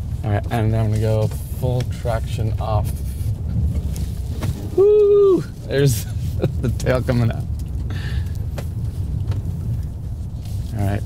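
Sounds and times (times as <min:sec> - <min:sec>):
tyres rumbling on dirt and gravel: 0:00.0 - 0:11.0.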